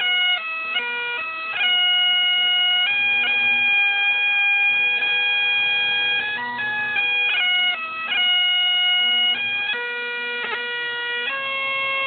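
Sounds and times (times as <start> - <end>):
bagpipes playing: 0.0 - 12.0.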